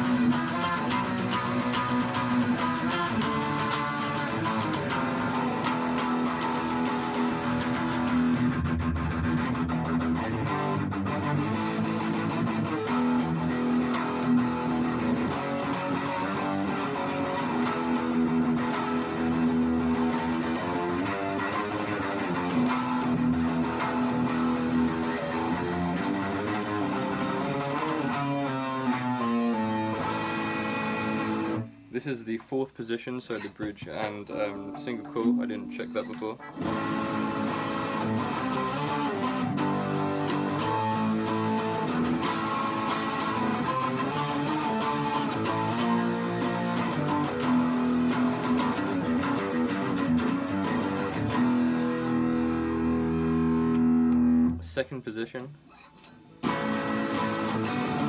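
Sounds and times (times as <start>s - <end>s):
distorted electric guitar lead: 0.0s - 31.9s, 33.3s - 54.8s, 55.7s - 58.0s.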